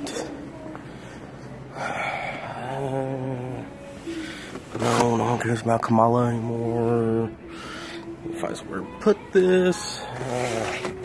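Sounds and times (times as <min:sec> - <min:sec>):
man humming: 0:01.7 - 0:05.2, 0:09.4 - 0:11.0
man murmuring: 0:01.8 - 0:03.7.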